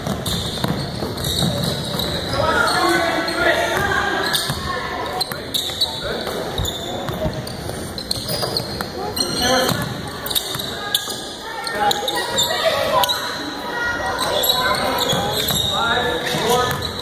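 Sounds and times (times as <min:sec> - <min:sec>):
ball bouncing on hardwood floor: 0:00.0 - 0:02.0.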